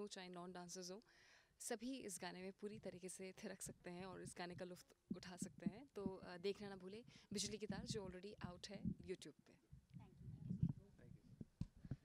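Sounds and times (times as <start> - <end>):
microphone handling knocks: 5.1 - 6.3, 7.4 - 9.1, 11.4 - 12.0.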